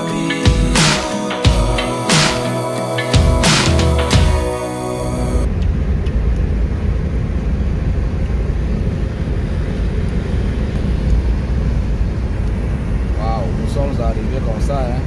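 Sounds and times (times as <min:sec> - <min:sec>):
car road and engine noise: 0:00.0 - 0:15.0
man talking: 0:13.2 - 0:15.0.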